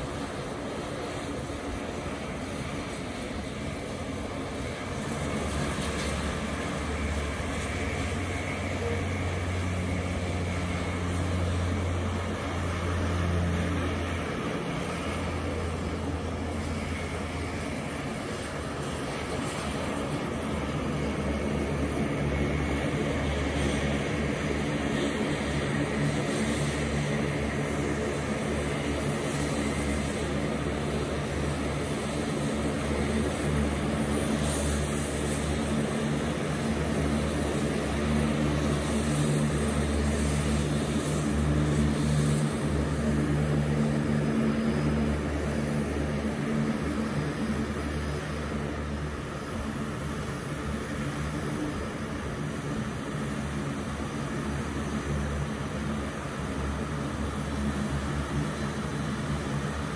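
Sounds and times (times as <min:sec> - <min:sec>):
turboprop aircraft taxiing: 0:00.0 - 0:59.9.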